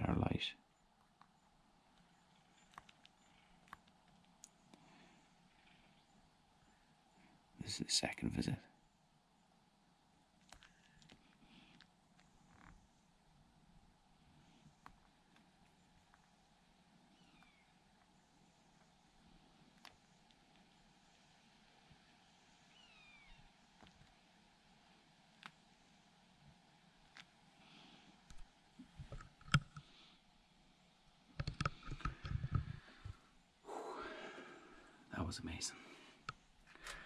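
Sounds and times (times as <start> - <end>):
faint bird chirps: 0.0 - 9.6, 14.4 - 24.4
camera handling bumps and rustling: 31.4 - 33.2.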